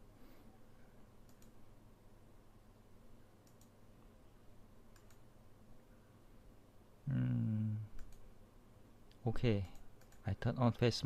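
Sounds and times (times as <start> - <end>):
computer mouse clicks: 1.2 - 1.6, 3.4 - 3.8, 4.9 - 5.2, 8.0 - 8.3, 9.7 - 10.3.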